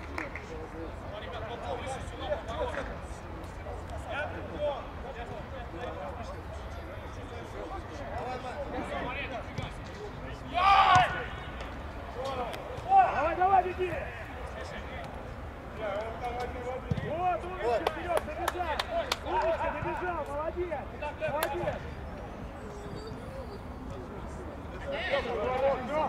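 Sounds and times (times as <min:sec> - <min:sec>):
players shouting: 0:10.4 - 0:14.8
ball being kicked: 0:16.9 - 0:17.1.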